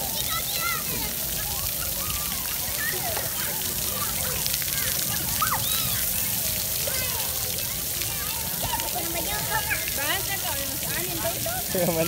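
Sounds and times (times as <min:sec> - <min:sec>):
children chattering and calling: 0:00.0 - 0:12.0
fountain jets splashing: 0:00.0 - 0:12.0.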